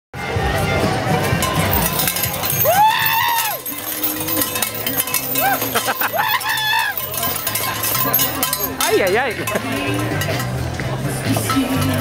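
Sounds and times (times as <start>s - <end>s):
background music with bass: 0.2s - 12.0s
light metallic clinking: 1.4s - 10.5s
high whooping cheers: 2.6s - 3.6s, 5.4s - 7.0s.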